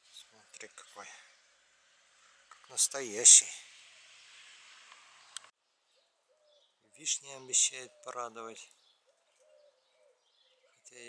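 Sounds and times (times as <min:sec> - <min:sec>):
faint outdoor hiss: 0:00.0 - 0:11.0
faint bird call: 0:05.1 - 0:11.0.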